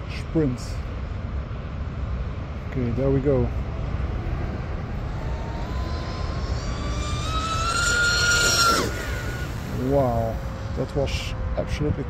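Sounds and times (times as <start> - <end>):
rc speedboat motor whine: 4.0 - 11.8.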